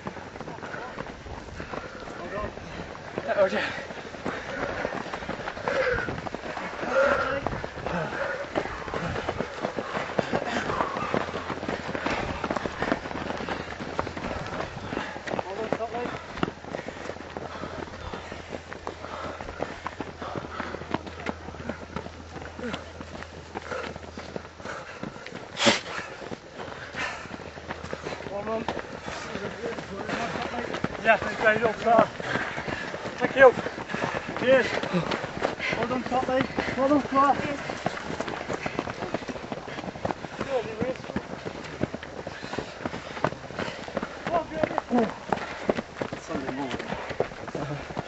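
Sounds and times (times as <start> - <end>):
runners' footsteps on dirt path: 0.0 - 48.0.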